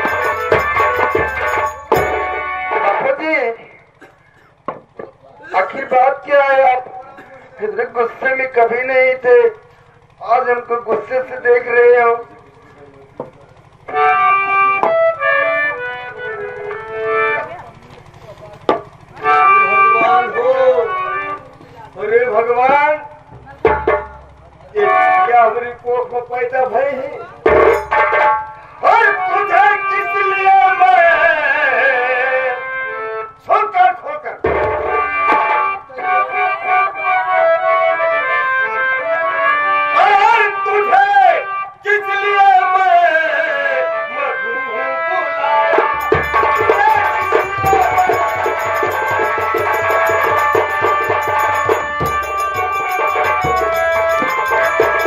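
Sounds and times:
held reed-like notes: 0:00.0 - 0:02.9, 0:45.9 - 0:55.0
harmonium sustained notes: 0:00.0 - 0:04.7, 0:07.6 - 0:23.6, 0:24.2 - 0:33.8, 0:34.8 - 0:55.0
knock: 0:04.7 - 0:05.1
man's voice: 0:05.4 - 0:12.8, 0:19.2 - 0:23.7, 0:24.5 - 0:27.5, 0:28.8 - 0:32.6, 0:33.4 - 0:34.5, 0:39.9 - 0:55.0.

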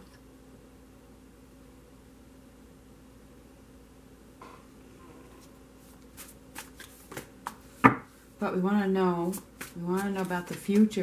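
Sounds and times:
cards shuffling: 0:05.9 - 0:07.8, 0:09.2 - 0:11.0.

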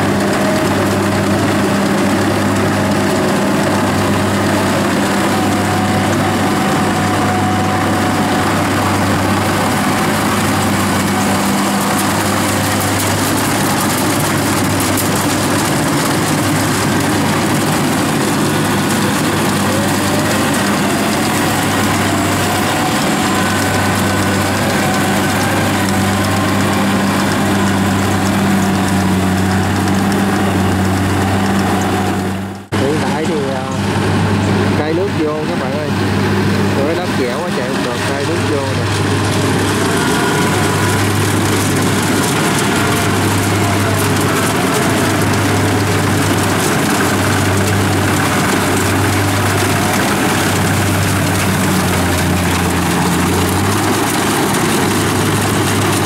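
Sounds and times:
combine harvester engine running: 0:00.0 - 0:56.0.

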